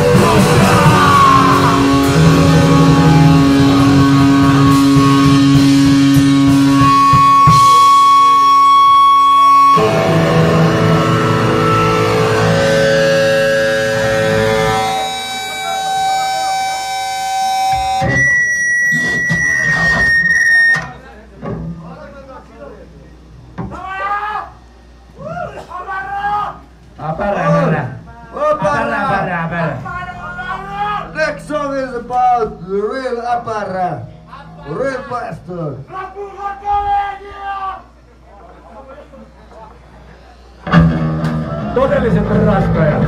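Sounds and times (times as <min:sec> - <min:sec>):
guitar feedback whine: 0:00.0 - 0:21.6, 0:27.3 - 0:35.6, 0:40.4 - 0:43.0
punk band playing live: 0:00.0 - 0:21.8, 0:40.6 - 0:43.0
voices in room: 0:14.7 - 0:43.0.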